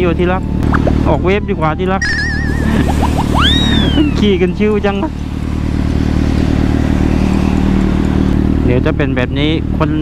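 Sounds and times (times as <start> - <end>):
motorcycle engine cruising: 0.0 - 10.0.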